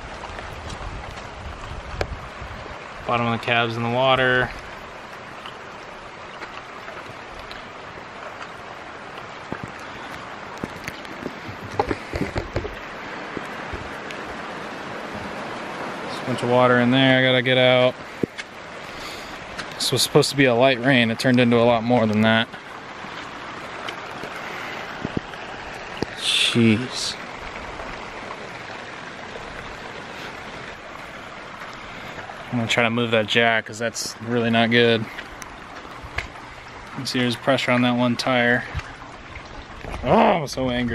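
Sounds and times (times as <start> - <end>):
heavy rain: 0.0 - 40.9
short knocks and clicks: 10.6 - 14.2.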